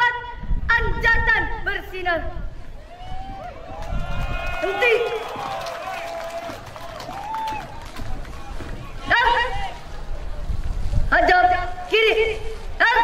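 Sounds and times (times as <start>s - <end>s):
children marching in boots: 3.6s - 10.8s.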